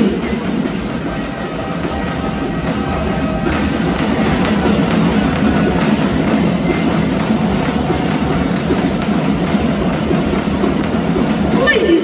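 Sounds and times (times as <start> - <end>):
crowd noise: 0.0 - 12.0
drumming and music: 0.0 - 12.0.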